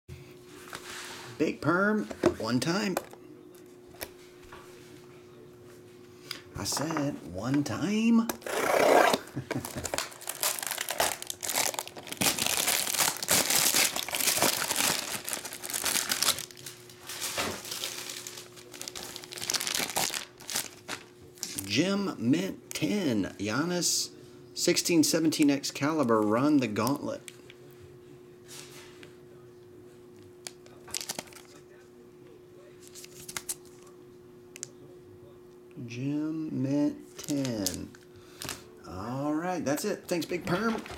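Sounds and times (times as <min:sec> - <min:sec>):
steady low hum: 0:00.1 - 0:40.9
plastic wrap and foil crinkling: 0:09.1 - 0:21.7, 0:30.4 - 0:31.6, 0:37.1 - 0:38.7.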